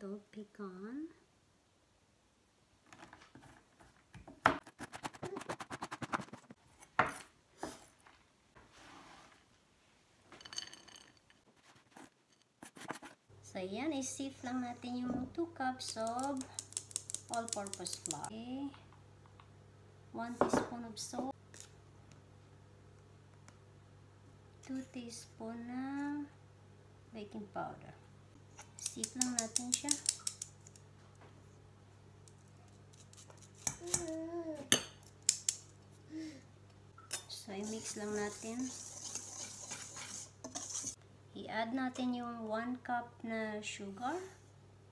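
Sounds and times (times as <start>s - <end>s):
nuts scraped across board: 37.6s - 41.0s.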